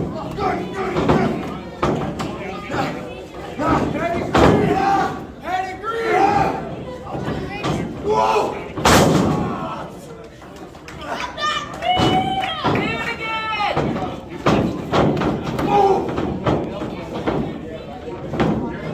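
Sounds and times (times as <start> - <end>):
spectators shouting: 3.6 - 6.8, 7.8 - 10.0
bodies slamming on wrestling ring: 8.8 - 9.6.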